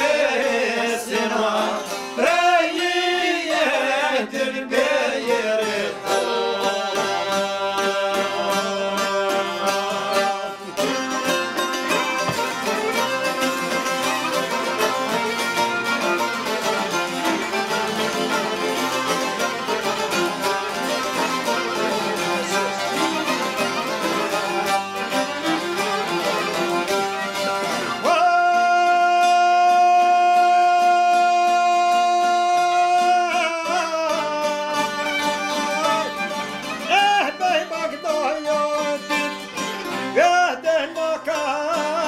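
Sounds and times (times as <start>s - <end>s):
man singing: 0.0s - 12.4s, 21.2s - 26.9s, 27.6s - 42.0s
accordion: 0.0s - 42.0s
plucked lutes: 0.0s - 42.0s
violin: 0.0s - 42.0s.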